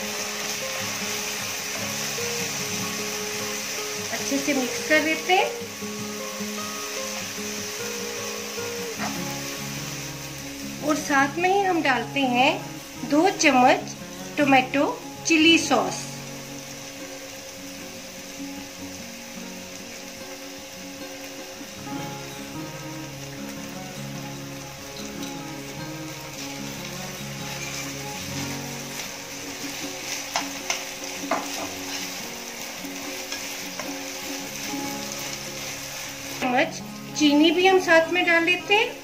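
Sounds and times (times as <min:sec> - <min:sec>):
vegetables sizzling in a frying pan: 0:00.0 - 0:39.0.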